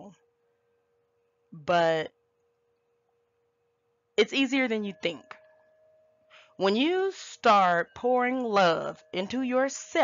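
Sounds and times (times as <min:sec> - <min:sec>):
singing bowl ringing: 0:03.4 - 0:10.0.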